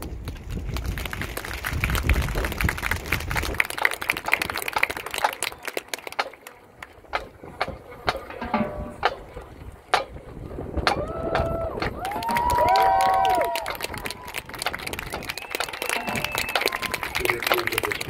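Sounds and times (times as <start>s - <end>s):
audience clapping: 0.0s - 7.1s, 11.0s - 18.0s.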